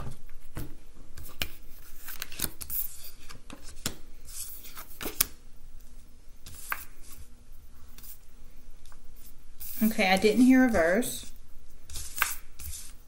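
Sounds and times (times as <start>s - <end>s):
cards being shuffled: 0.5s - 5.4s, 11.9s - 13.0s.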